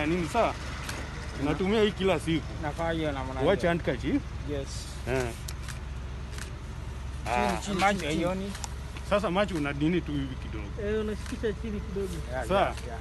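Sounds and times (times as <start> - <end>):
men talking: 0.0 - 5.6, 7.0 - 13.0.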